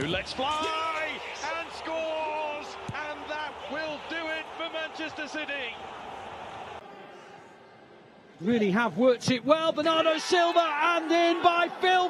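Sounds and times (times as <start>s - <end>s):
football commentator calling a goal: 0.0s - 5.8s, 8.4s - 12.0s.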